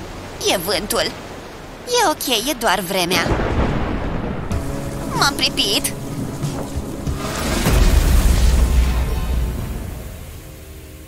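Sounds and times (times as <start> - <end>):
rain pouring: 3.1 - 11.0
thunder rumbling: 3.3 - 11.0.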